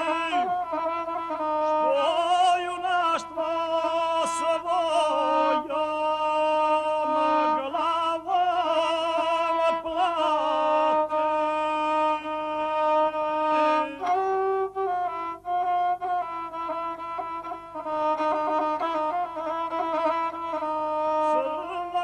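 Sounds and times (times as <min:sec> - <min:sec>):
bowed single-string fiddle melody: 0:00.0 - 0:22.0.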